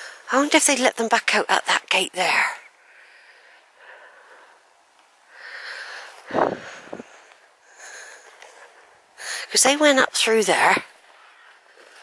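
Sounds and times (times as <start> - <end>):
soft breathing: 2.7 - 9.6.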